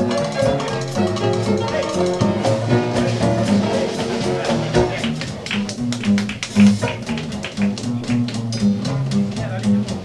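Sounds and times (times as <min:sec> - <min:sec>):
banjo strumming: 0:00.0 - 0:10.0
drums keeping a crisp beat: 0:00.0 - 0:10.0
jazz band playing: 0:00.0 - 0:10.0.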